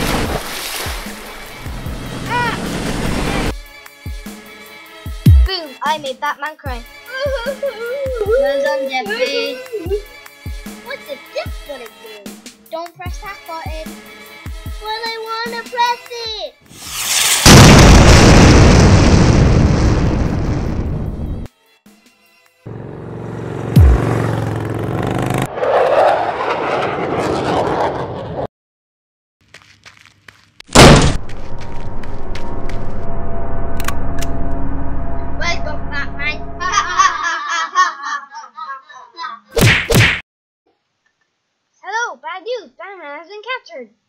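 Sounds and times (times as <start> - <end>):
background music: 0.9 - 16.7, 21.2 - 22.7
loud explosion sound effect: 16.8 - 21.5, 30.7 - 37.0
sharp bang: 30.7 - 36.7
noisy sound effects: 30.8 - 37.2.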